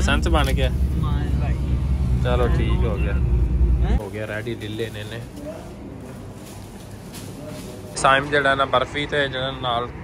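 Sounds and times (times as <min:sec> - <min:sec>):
car rumble from inside cabin: 0:00.0 - 0:04.0.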